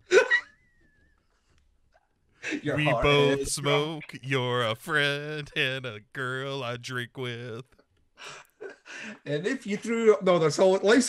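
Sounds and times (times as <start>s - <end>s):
man laughing: 2.8s - 7.6s.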